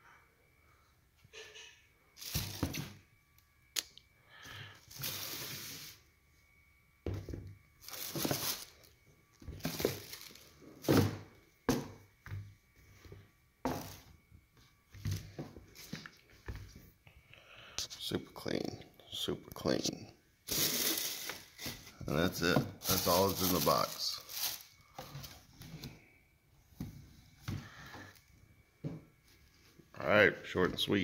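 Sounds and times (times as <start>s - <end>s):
paper and cardboard rustling: 7.9s - 8.8s, 20.6s - 25.4s.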